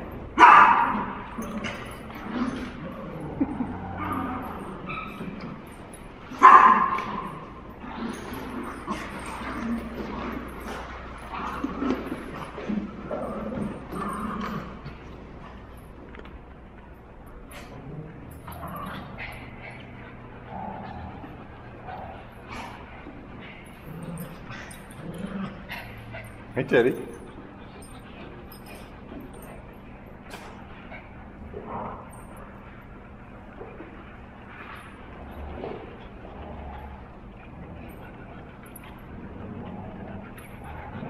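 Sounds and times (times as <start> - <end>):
small dogs playing: 0.0 - 41.0
loud dog bark: 0.4 - 1.0, 6.4 - 7.0
dog whining: 0.4 - 15.6.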